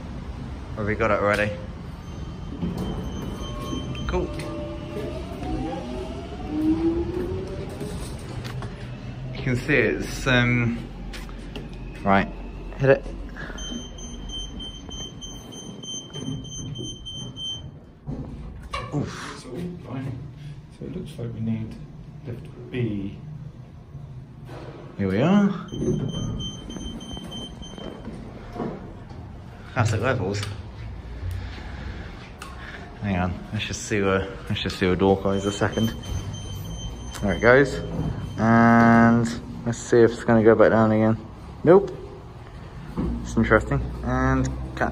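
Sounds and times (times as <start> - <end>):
high electronic lift beeps: 1.9 - 7.3, 11.9 - 17.8, 25.6 - 28.2, 35.2 - 38.8.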